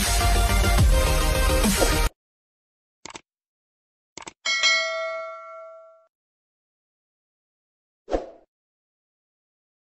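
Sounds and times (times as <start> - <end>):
notification bell ding: 4.5 - 6.1.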